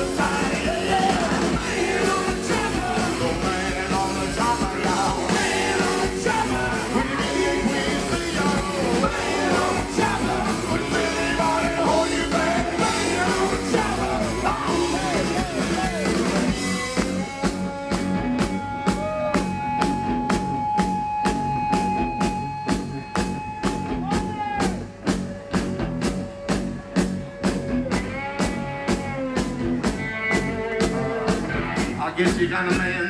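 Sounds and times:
bass guitar: 0.0 - 33.0
drum kit beat: 0.0 - 33.0.

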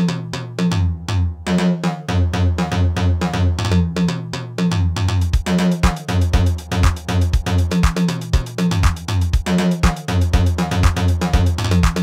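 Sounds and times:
drum machine hi-hat pattern: 0.0 - 12.0
repeating bass line: 0.0 - 12.0.

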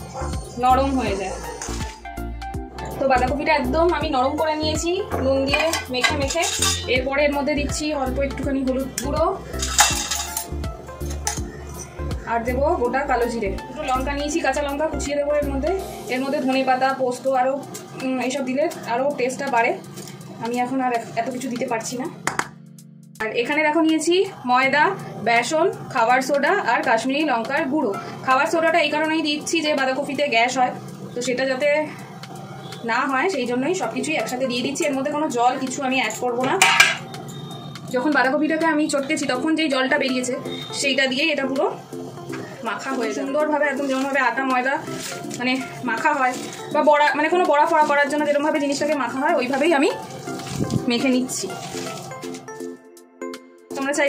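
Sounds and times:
background music: 0.0 - 54.0
metal plate clattering on stone: 5.5 - 6.9, 9.6 - 10.5, 36.4 - 37.1
steel spoon scraping steel cups: 5.5 - 7.0, 9.6 - 11.9.

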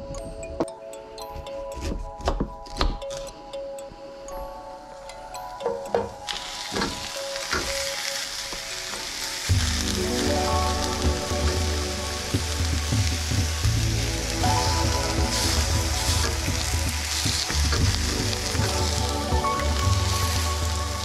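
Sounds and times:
vegetables sizzling in a skillet: 6.3 - 21.0.

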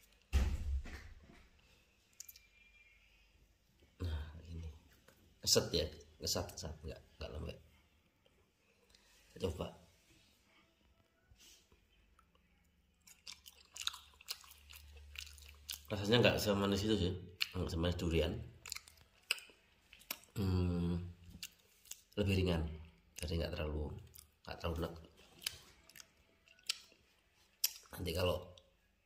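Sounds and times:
wet mouth clicks and smacks: 2.1 - 2.5, 25.3 - 27.0, 27.6 - 27.9
person chewing fruit: 2.1 - 2.7, 11.8 - 15.9, 18.5 - 22.2, 24.0 - 28.0.

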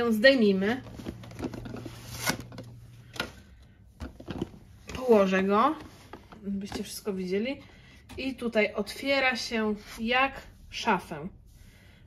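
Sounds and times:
cardboard scraping and rustling: 0.8 - 2.7.

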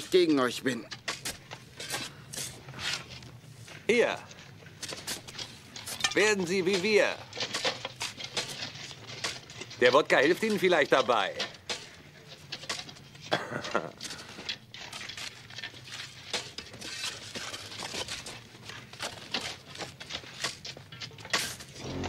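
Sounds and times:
shovels digging into dirt: 0.0 - 3.4, 4.8 - 22.0.

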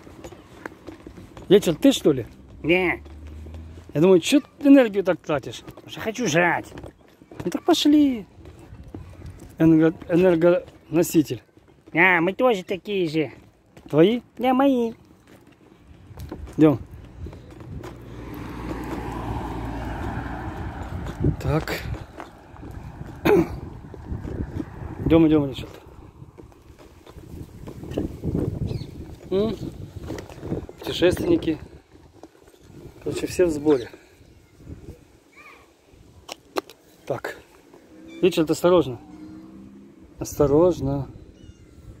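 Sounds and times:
car passing by: 2.2 - 4.0, 17.6 - 28.3, 37.2 - 40.4.

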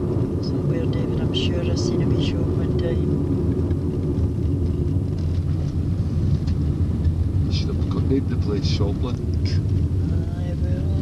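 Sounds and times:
car engine hum: 0.0 - 11.0
road noise: 0.0 - 11.0.

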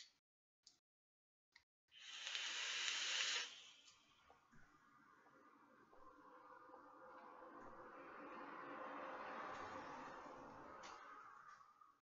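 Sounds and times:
hissing vape draw: 2.0 - 4.0
breathy exhale: 2.0 - 4.1.

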